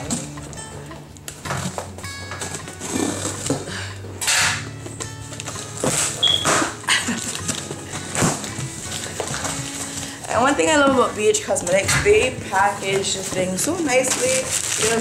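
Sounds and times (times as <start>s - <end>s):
background music with low notes: 0.0s - 15.0s
package being torn open: 5.2s - 9.9s, 14.1s - 15.0s.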